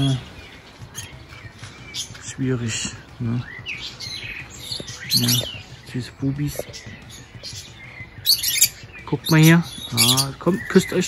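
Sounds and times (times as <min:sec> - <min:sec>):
parrots chirping: 0:00.0 - 0:02.2, 0:03.4 - 0:05.9, 0:06.5 - 0:11.0.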